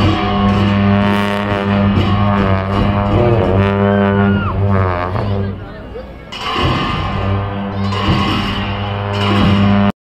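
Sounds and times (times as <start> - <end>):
long horns droning: 0.0 - 9.9.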